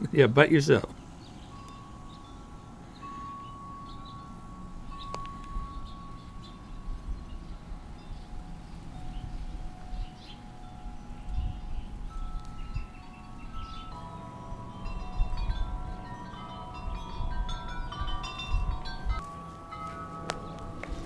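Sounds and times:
wind chimes ringing: 0.0s - 21.0s
low rumbling: 1.2s - 21.0s.

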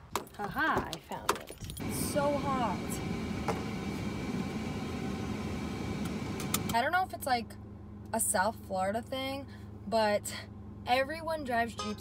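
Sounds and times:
air-conditioning blower: 1.8s - 6.9s.

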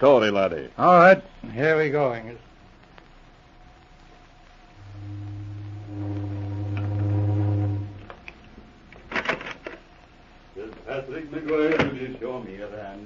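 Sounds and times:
deep horn-like tone: 4.8s - 8.3s.

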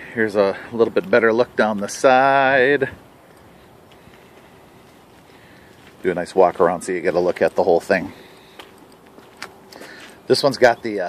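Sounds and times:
faint footsteps on pavement: 0.0s - 11.0s
low outdoor background noise: 0.0s - 11.0s.

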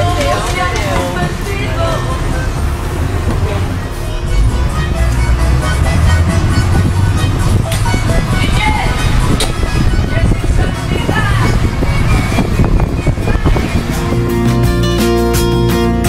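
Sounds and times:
music playing: 0.0s - 16.0s
truck driving rumble: 0.0s - 16.0s.

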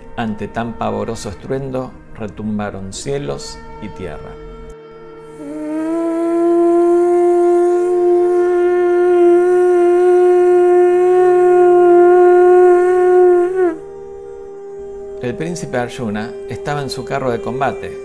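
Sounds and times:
soft music drone: 0.0s - 18.0s
conch shell blown in long note: 3.1s - 18.0s.

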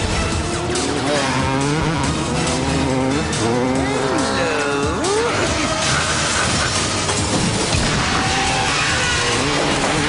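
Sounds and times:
cartoon motorcycle engines roaring: 0.6s - 10.0s.

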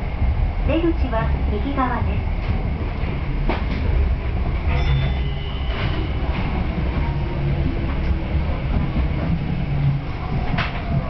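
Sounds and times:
subway train rumbling: 0.0s - 11.0s
brake squeals: 4.7s - 6.2s.

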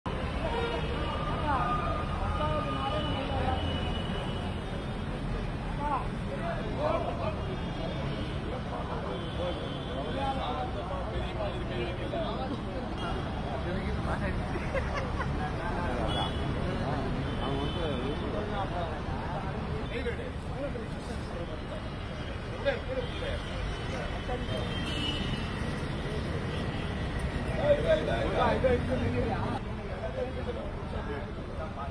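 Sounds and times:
road traffic rumble: 0.1s - 31.9s.

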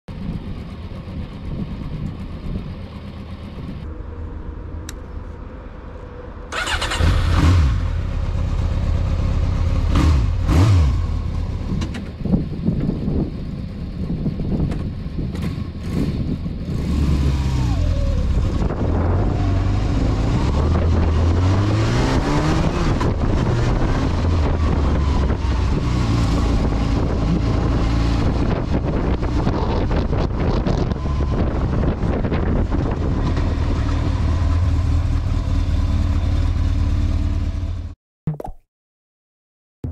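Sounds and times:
motorcycle engine revving: 6.5s - 12.0s, 15.2s - 38.0s.

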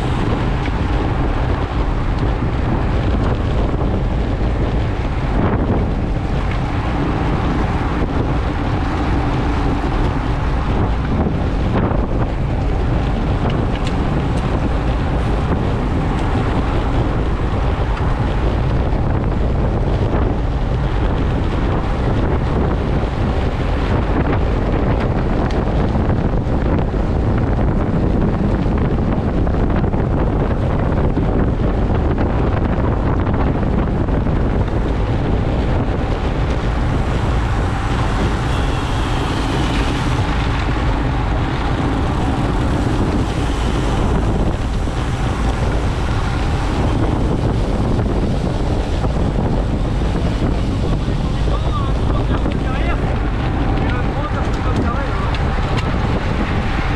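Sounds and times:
wind buffeting microphone: 0.0s - 56.9s.

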